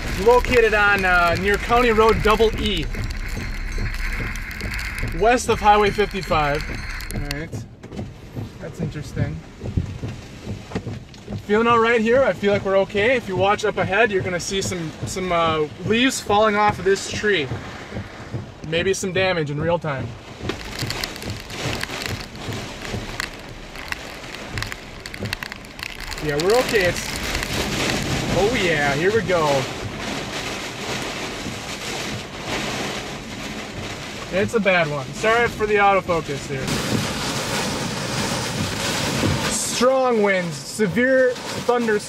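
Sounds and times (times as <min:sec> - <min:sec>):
wind and rain against car: 0:00.0 - 0:42.0.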